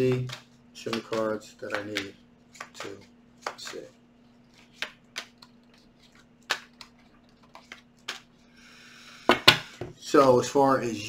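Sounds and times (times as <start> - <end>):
cards shuffled on a table: 0.0 - 3.9, 4.5 - 8.3.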